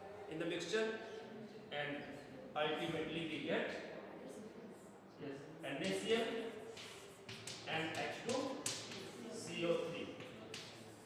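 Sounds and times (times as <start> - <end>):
chalk tapping on a blackboard: 5.8 - 11.0
man speaking: 7.6 - 10.2.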